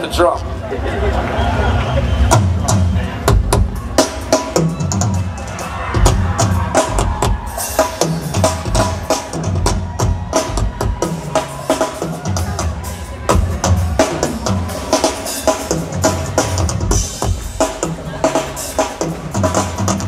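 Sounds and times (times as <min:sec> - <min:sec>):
drum kit solo: 0:02.3 - 0:20.0.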